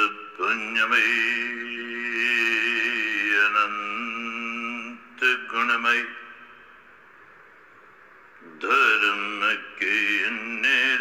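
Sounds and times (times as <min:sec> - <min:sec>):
man chanting: 0:00.0 - 0:06.6, 0:08.4 - 0:11.0.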